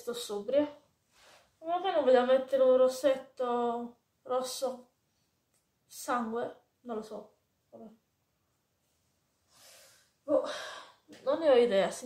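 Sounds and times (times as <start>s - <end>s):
woman sighing: 10.3s - 11.0s.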